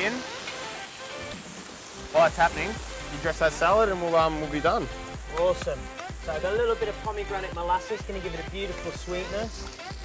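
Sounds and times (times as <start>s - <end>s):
faint background music: 0.0s - 10.0s
fish sizzling in hot oil: 0.0s - 10.0s.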